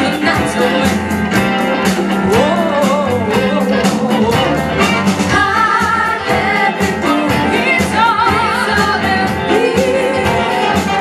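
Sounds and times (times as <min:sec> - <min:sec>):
bass guitar: 0:00.0 - 0:11.0
drums steady beat: 0:00.0 - 0:11.0.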